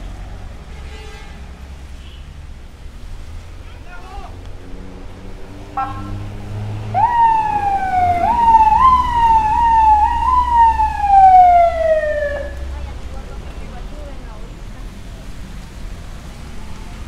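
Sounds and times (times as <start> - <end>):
police siren whooping and wailing: 5.8 - 12.7.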